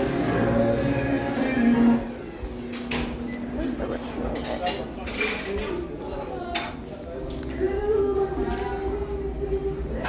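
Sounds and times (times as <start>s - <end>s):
dishes and cutlery clinking: 4.1s - 7.6s.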